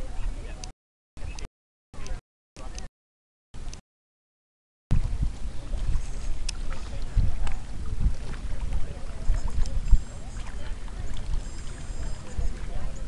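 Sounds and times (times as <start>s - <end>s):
wind gusting on microphone: 4.9s - 13.0s
waves lapping on rocky shore: 5.0s - 13.0s.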